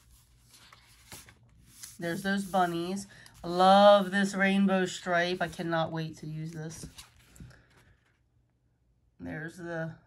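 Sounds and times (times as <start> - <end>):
paper page rustling: 0.0 - 4.0, 6.4 - 8.3
soft brushes on paper: 0.0 - 4.4.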